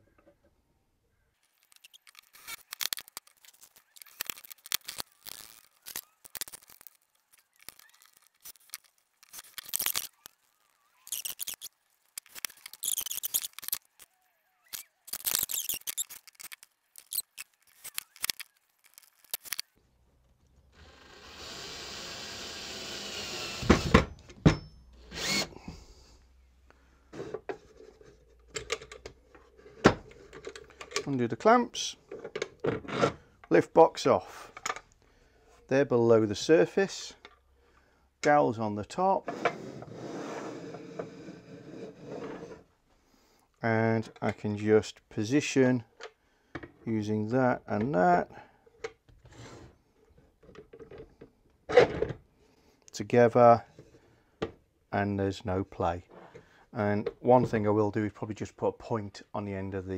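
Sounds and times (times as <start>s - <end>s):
metal brackets clicking and scraping: 11.1s - 14.1s
cordless drill driving screws: 20.8s - 24.0s, 25.0s - 25.7s.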